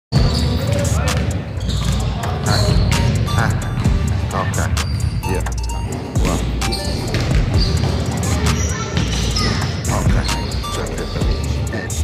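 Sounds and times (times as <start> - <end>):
basketballs bouncing on wood floor: 0.2 - 4.1, 5.9 - 10.3.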